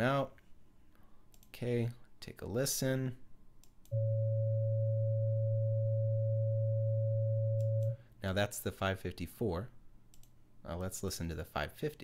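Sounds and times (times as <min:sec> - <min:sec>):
high sine tone: 0:03.9 - 0:08.0
low sine tone: 0:03.9 - 0:08.0.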